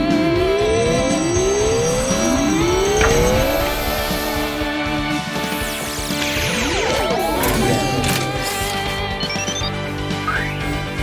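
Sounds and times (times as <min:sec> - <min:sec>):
cartoon rising tones: 0:00.0 - 0:04.5
background music: 0:00.0 - 0:11.0.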